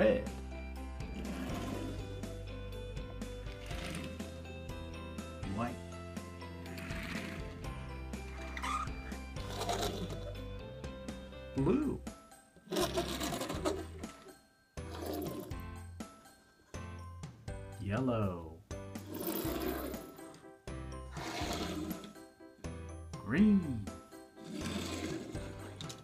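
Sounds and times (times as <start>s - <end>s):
background music: 0.0s - 26.0s
toy car wheels rolling: 12.7s - 14.2s, 19.0s - 20.2s, 21.2s - 22.1s, 24.4s - 26.0s.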